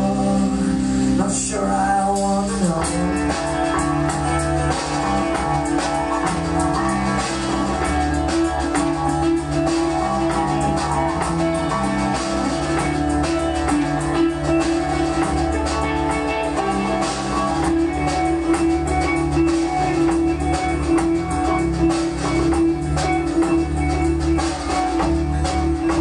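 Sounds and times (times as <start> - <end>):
bass notes: 0.0 - 26.0
drum kit steady beat: 0.0 - 26.0
guitars with sustained notes: 0.0 - 26.0.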